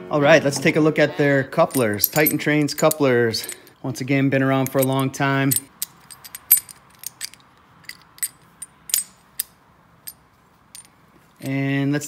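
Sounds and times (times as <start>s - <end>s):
metal coupler clicks and clacks: 4.7s - 9.5s.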